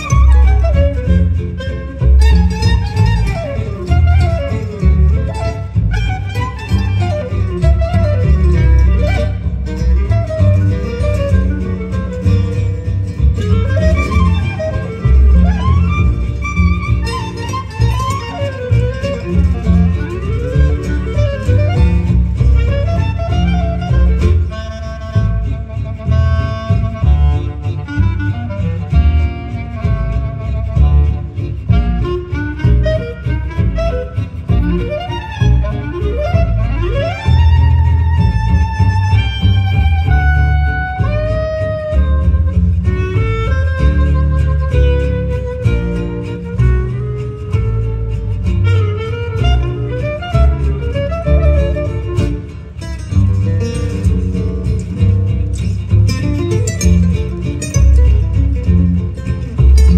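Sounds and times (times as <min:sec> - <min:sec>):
acoustic guitars strumming: 0:00.0 - 0:59.9
clarinet melody: 0:00.0 - 0:59.9
double bass: 0:00.0 - 0:59.9.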